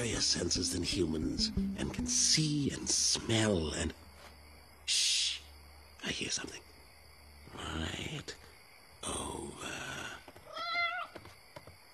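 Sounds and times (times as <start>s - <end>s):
cat yowling: 10.5s - 11.1s.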